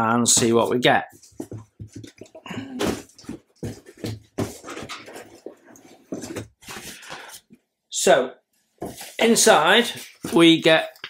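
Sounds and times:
paper and plastic rustling: 1.1s - 7.5s
box lid scraping: 1.2s - 7.4s.

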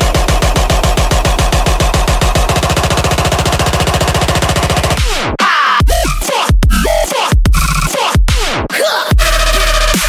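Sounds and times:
rapid bass-heavy drum roll: 0.0s - 10.0s.

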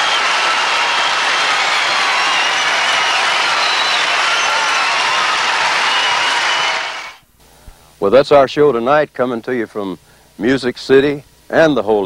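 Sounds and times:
audience applauding: 0.0s - 7.2s.

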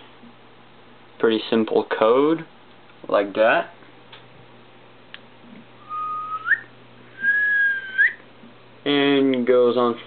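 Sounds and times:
person whistling: 5.8s - 8.2s.

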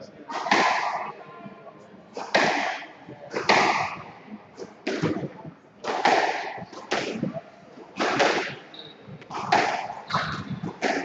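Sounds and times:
squash ball hitting racket and walls: 0.3s - 1.2s, 2.2s - 11.0s.

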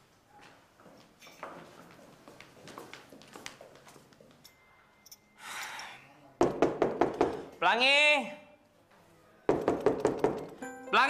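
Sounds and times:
knocking on wooden door: 6.4s - 7.4s.

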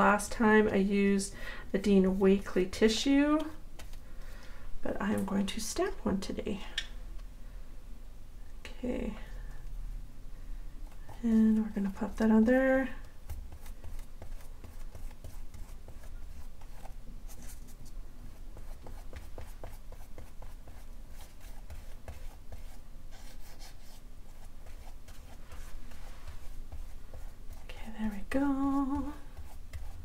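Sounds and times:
paintbrush brushing on paper: 10.8s - 30.0s.

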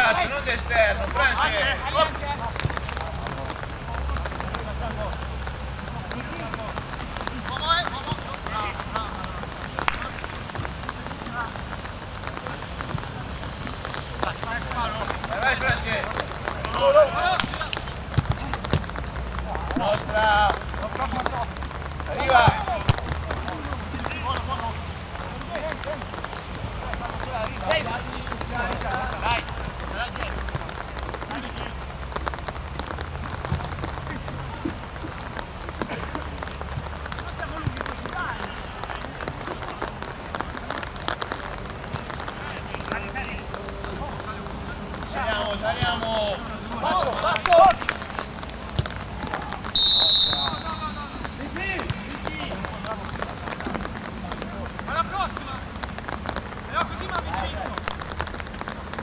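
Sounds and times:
players shouting: 4.3s - 32.4s, 33.2s - 58.0s
referee's whistle blast: 49.8s - 51.1s.

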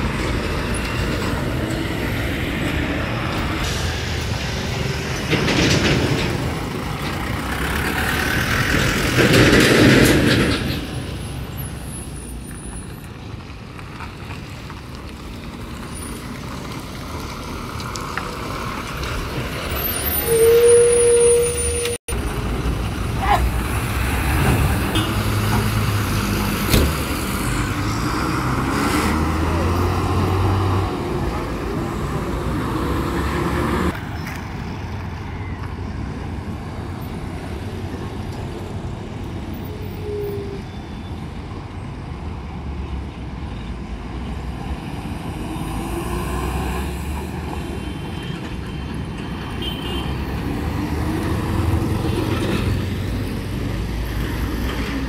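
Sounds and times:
diesel buses passing: 0.0s - 55.0s
road traffic: 0.0s - 55.0s.

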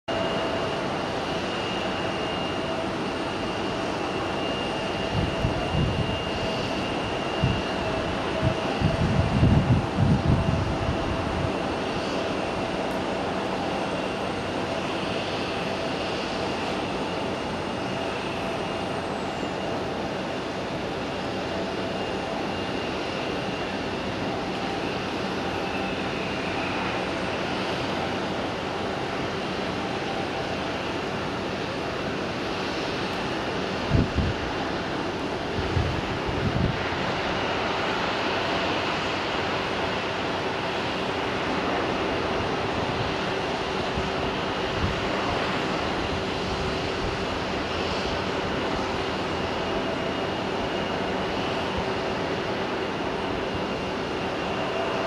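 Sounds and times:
jet engine whine: 0.0s - 55.0s.

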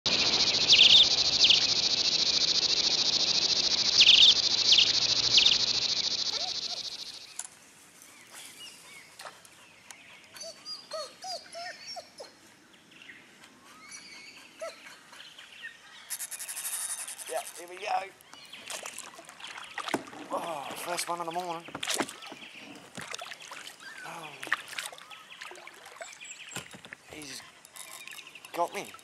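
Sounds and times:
bird chirps and whistles: 0.1s - 7.2s
high insect buzz: 0.1s - 7.3s, 16.1s - 17.7s
sweeping insect calls: 0.1s - 7.4s, 16.1s - 22.8s.

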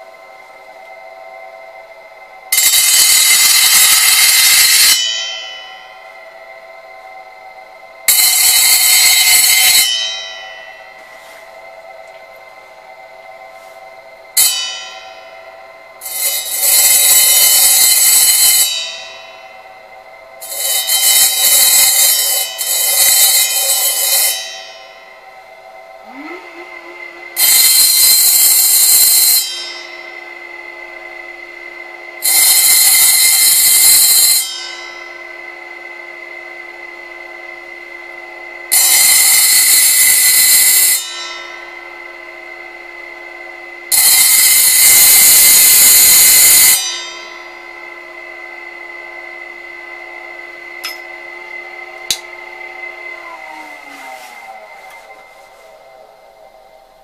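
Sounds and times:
blade grinding on diamond disc: 2.5s - 5.8s, 8.1s - 10.8s, 16.0s - 19.5s, 20.3s - 56.4s
electric motor humming: 15.2s - 57.0s.

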